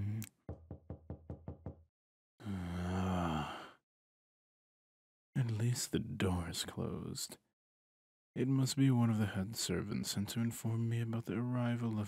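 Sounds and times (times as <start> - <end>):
knocking on a door: 0.5 - 1.8.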